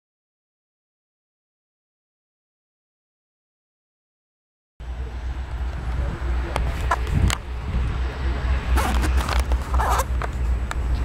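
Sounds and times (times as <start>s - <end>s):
wind rumble on microphone: 5.5s - 11.0s.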